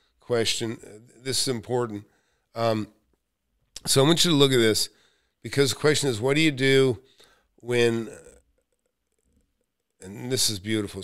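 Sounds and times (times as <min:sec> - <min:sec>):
man speaking: 0:00.2 - 0:03.0, 0:03.8 - 0:07.0, 0:07.6 - 0:08.4, 0:10.0 - 0:11.0.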